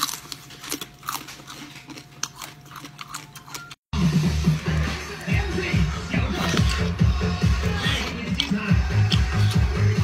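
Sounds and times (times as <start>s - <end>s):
chewing shellfish: 0.0s - 3.9s, 6.2s - 7.1s, 7.8s - 10.0s.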